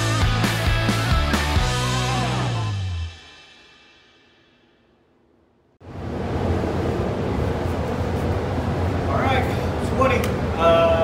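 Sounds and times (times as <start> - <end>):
music track: 0.0 - 3.6
ventilation air rushing with hum: 5.0 - 11.0.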